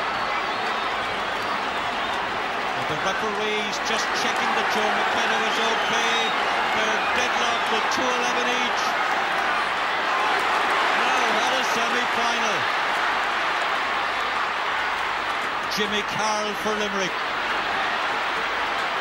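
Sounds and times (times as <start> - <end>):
stadium crowd cheering: 0.0 - 19.0.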